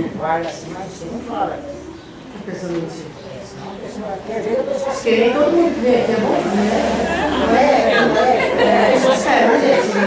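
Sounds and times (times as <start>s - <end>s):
voices talking in a room: 0.0s - 10.0s.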